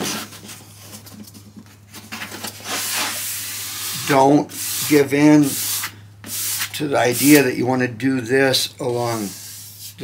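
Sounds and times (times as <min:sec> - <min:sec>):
steady low hum: 0:00.0 - 0:10.0
sanding pad scratching wood: 0:02.7 - 0:07.4.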